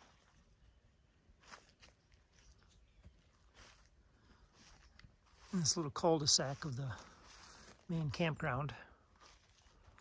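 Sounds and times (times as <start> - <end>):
soft footsteps on dry ground: 0.0 - 10.0.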